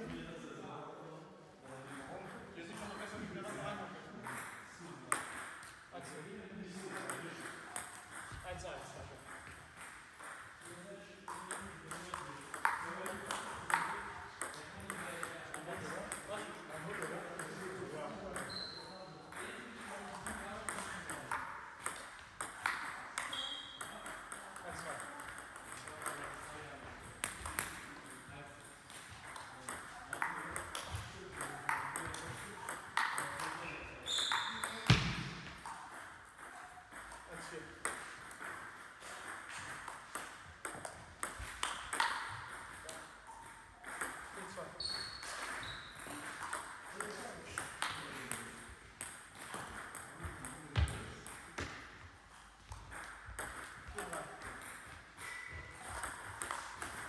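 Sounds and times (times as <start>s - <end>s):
table tennis ball clicking: 54.6s - 57.0s.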